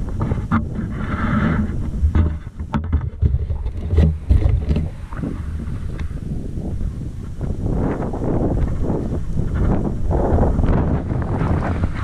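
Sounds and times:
wind buffeting microphone: 0.0s - 12.0s
bike knocking and rattling: 1.6s - 6.2s.

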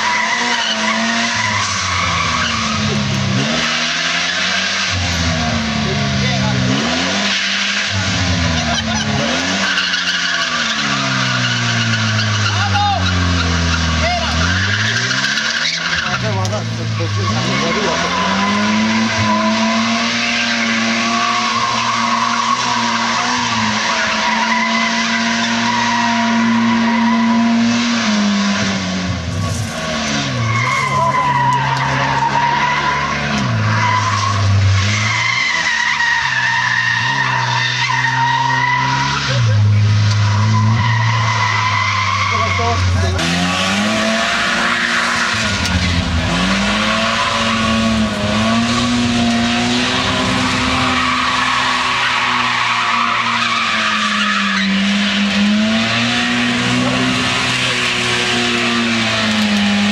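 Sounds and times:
rally car engine revving: 0.0s - 59.9s
tyres squealing on asphalt: 0.0s - 59.9s.

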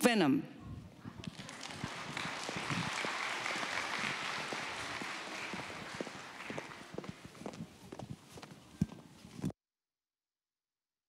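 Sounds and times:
audience applauding: 1.2s - 7.6s.

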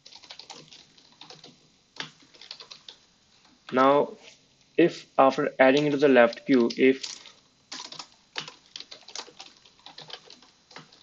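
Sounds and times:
computer keyboard typing: 0.0s - 3.0s, 5.7s - 11.0s.

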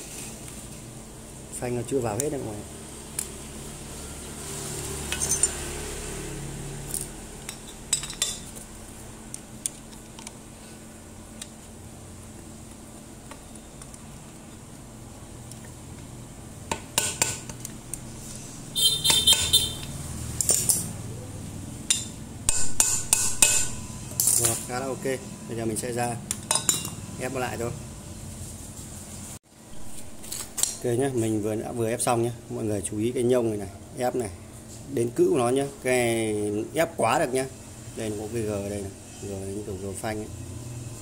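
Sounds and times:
metal clinks and knocks: 5.1s - 5.6s.

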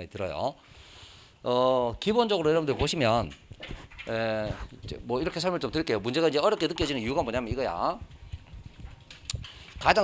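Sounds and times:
man speaking: 1.4s - 3.4s, 4.1s - 8.0s
microphone handling noise: 2.7s - 6.0s, 6.6s - 10.0s.

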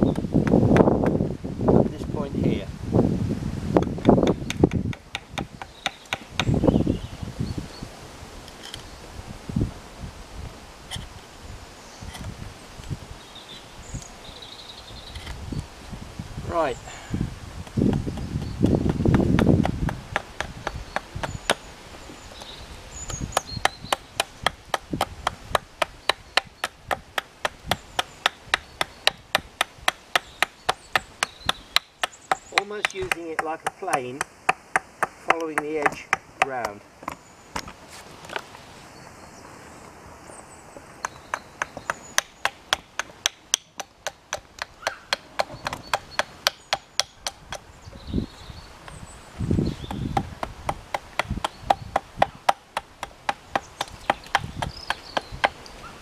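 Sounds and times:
hatchet chopping wood: 0.0s - 1.2s, 3.8s - 6.6s, 17.6s - 21.7s, 23.0s - 37.7s, 41.0s - 47.7s, 49.8s - 55.6s
wind buffeting microphone: 0.0s - 36.7s, 44.4s - 56.0s.

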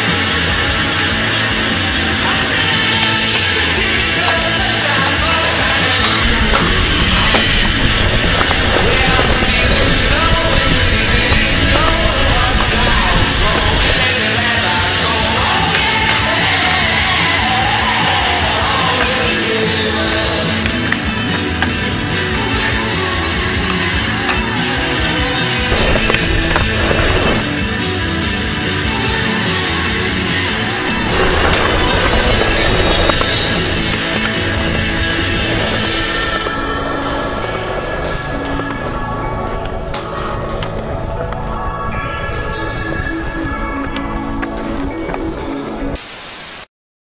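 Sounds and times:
rock music with electric guitar: 0.0s - 46.0s
skateboard wheels rolling on concrete: 0.0s - 46.0s
skateboard clacks: 2.2s - 27.6s
static hiss: 46.0s - 46.7s.

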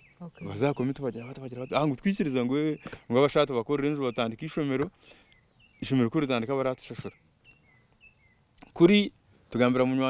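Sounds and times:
bird chirping: 0.0s - 10.0s
man speaking: 0.2s - 4.9s, 8.6s - 10.0s.

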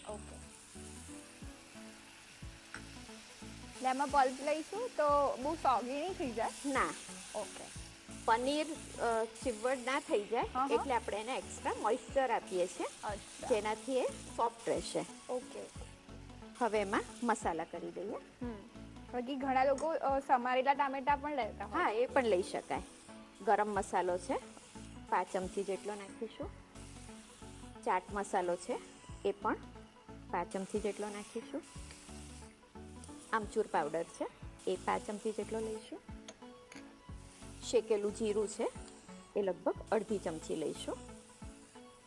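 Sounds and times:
background music: 0.0s - 42.0s
vegetables sizzling in a frying pan: 0.0s - 42.0s.

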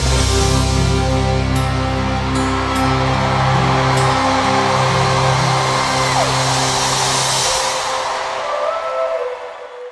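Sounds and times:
live band sustained chords: 0.0s - 9.7s.

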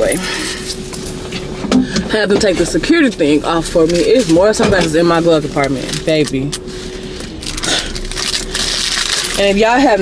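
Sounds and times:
steady hum with held tone: 0.0s - 10.0s.

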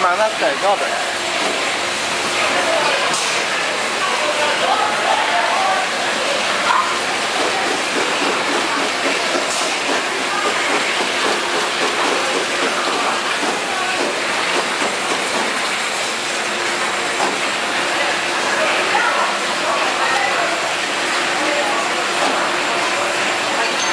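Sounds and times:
plastic bottles clattering on conveyor: 7.3s - 17.6s.

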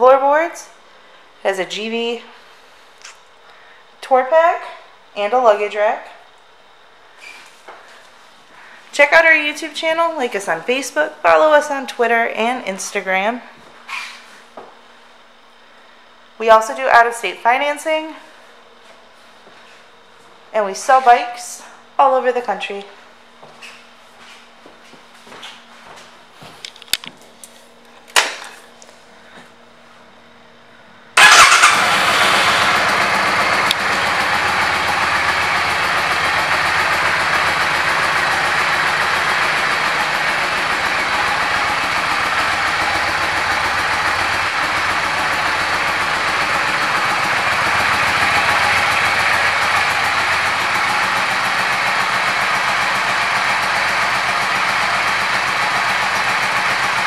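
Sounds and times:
motorcycle engine starting and idling: 31.2s - 57.0s.

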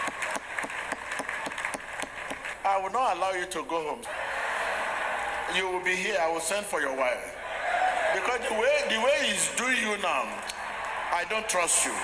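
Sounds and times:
crowd applauding: 0.0s - 2.6s, 10.1s - 12.0s
sharp hand claps: 0.0s - 2.6s.

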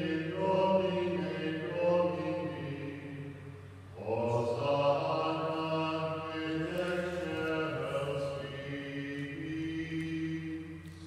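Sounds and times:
liturgical chant singing: 0.0s - 11.0s.

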